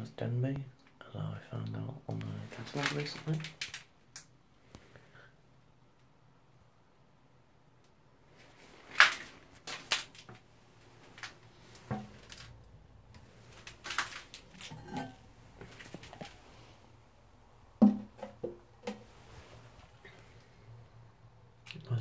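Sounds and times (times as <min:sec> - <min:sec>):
ceramic cistern lid clinking: 0:14.6 - 0:15.2.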